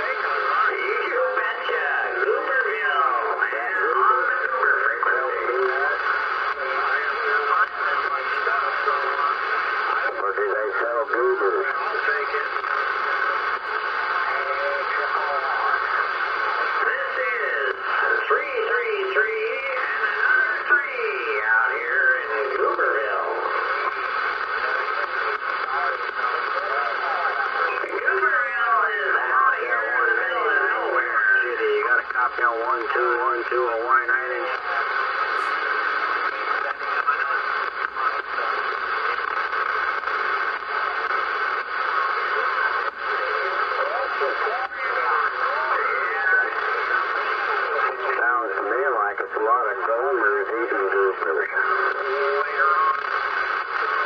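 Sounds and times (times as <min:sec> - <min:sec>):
radio static: 0:00.0 - 0:54.0
thin voices over radio speaker: 0:00.0 - 0:54.0.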